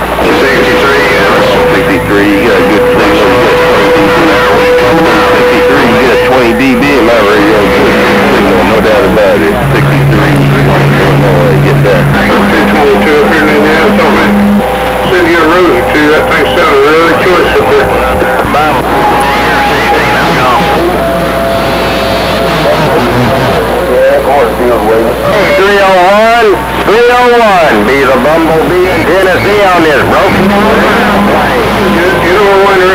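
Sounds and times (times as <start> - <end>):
warbling swooping tone: 0.0 - 23.8
garbled radio voices: 0.0 - 32.9
whistling radio tones: 0.0 - 32.9.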